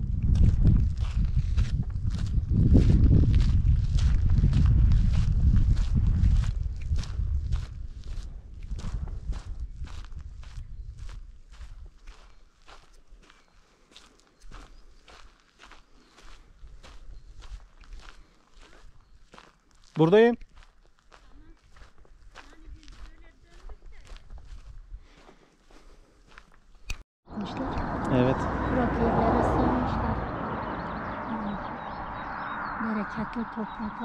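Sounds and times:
footsteps on rocky ground: 0:00.0 - 0:27.0.

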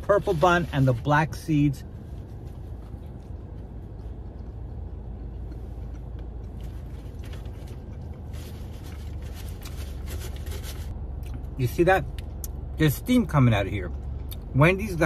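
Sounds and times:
low rumble in car cabin: 0:00.0 - 0:15.0
man chewing food: 0:02.2 - 0:09.8.

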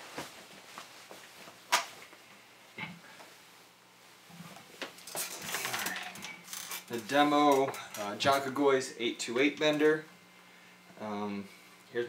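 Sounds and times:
guitar amp hum: 0:04.0 - 0:12.0.

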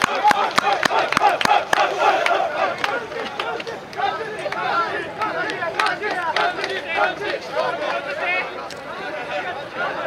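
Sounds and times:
sharp claps: 0:00.0 - 0:06.8.

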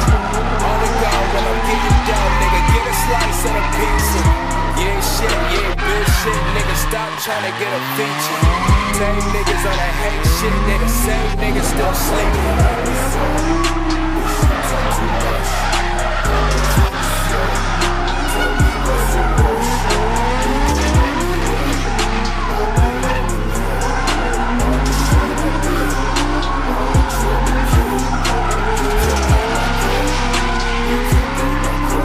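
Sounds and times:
car engines revving: 0:00.0 - 0:32.0
hip-hop track with heavy bass: 0:00.0 - 0:32.0
tyres squealing: 0:00.0 - 0:32.0.

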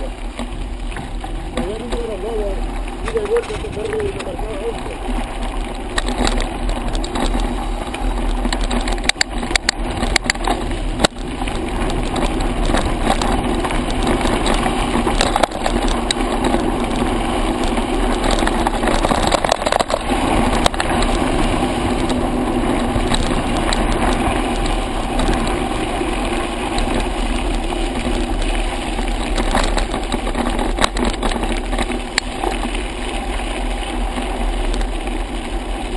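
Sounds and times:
bike tyres on gravel: 0:00.0 - 0:35.9
wind rush: 0:00.0 - 0:35.9
bike knocks and rattles: 0:05.2 - 0:35.9.

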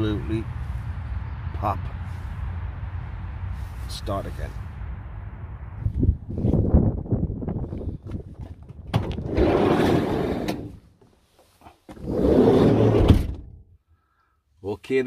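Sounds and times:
footsteps on pavement: 0:07.6 - 0:08.9
sliding van door rumbling: 0:08.9 - 0:10.8, 0:11.9 - 0:13.6.

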